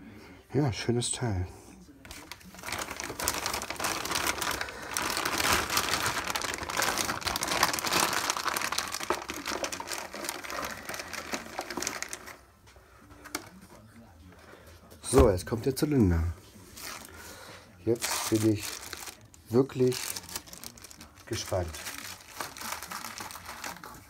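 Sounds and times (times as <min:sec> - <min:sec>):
plastic bag crinkling: 0:02.1 - 0:12.4, 0:16.7 - 0:24.0.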